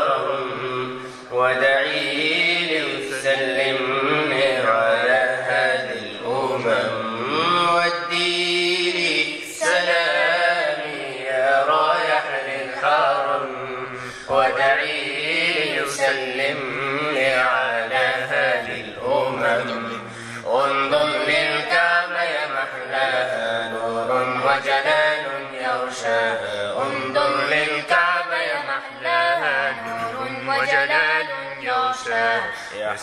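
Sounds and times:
devotional singing voices: 0:00.0 - 0:33.0.

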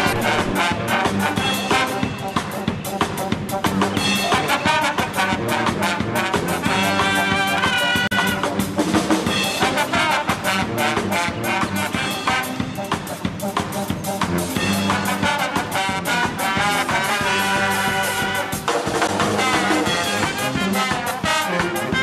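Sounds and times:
brass band playing upbeat tune: 0:00.0 - 0:22.0.

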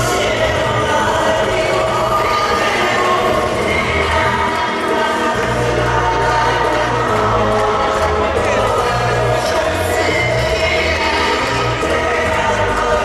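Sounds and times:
dance music with singing: 0:00.0 - 0:13.0.

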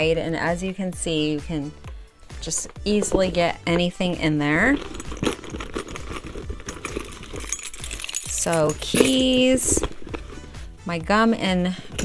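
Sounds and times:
leather rustling: 0:00.3 - 0:10.8, 0:11.7 - 0:12.0
keys clicking and clinking: 0:04.6 - 0:10.6, 0:11.8 - 0:12.0.

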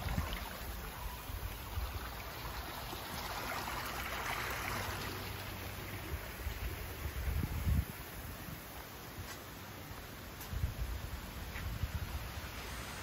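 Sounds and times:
rushing water: 0:00.0 - 0:10.3.

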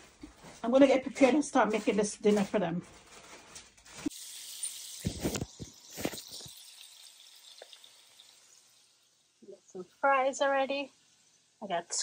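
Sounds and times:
hot oil sizzling in a pot: 0:04.0 - 0:12.0.

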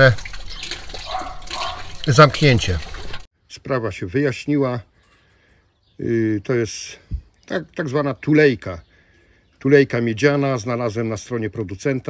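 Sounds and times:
water running and trickling: 0:00.0 - 0:03.3.

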